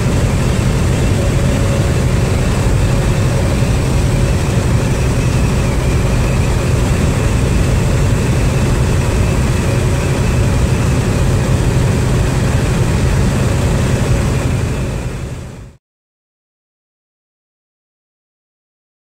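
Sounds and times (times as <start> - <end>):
road noise: 0.0 - 15.8
truck diesel engine droning: 0.0 - 15.8.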